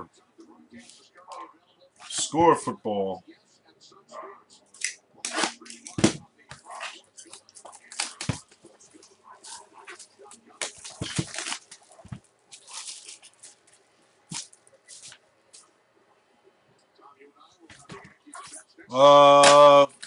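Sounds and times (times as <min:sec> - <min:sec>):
card pack wrapper crinkling: 0:12.5 - 0:15.1.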